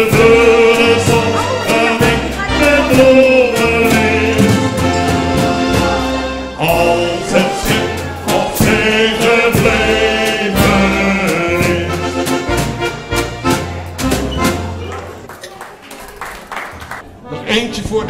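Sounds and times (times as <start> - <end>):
person singing: 0.0 - 12.5
accordion: 0.0 - 15.3
steady percussion beat: 0.0 - 15.3.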